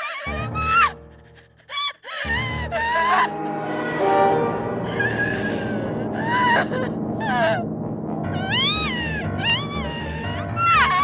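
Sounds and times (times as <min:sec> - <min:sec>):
low pulsing music: 0:02.3 - 0:11.0.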